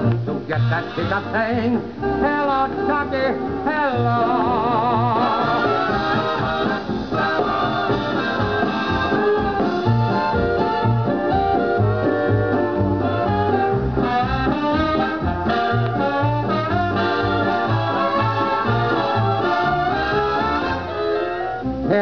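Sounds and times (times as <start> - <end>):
band playing show tune: 0.0 - 22.0
steady bass line: 0.0 - 22.0
person singing: 0.5 - 8.5.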